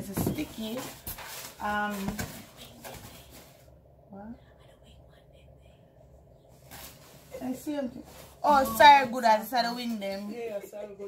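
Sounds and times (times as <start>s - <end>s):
soft whispering: 2.5s - 6.7s.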